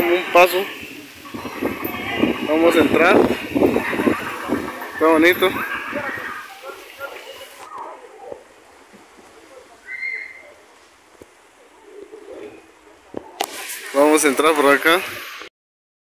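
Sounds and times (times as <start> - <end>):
faint distant voices: 0.0 - 15.5
short high-pitched call: 9.8 - 10.5.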